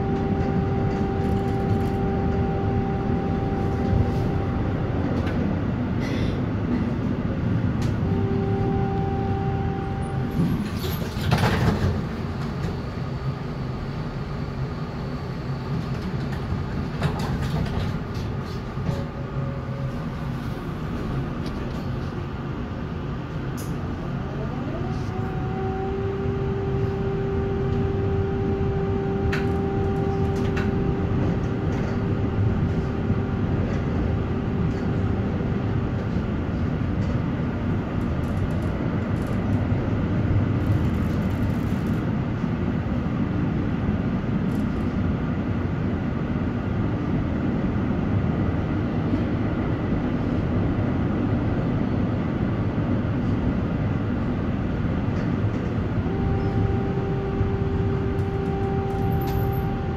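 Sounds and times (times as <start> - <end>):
tram wheels rumbling on rail: 0.0 - 59.9.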